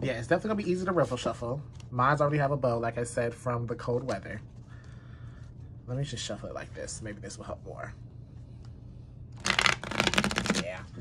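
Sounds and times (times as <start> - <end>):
cards riffle shuffling: 9.4 - 10.7.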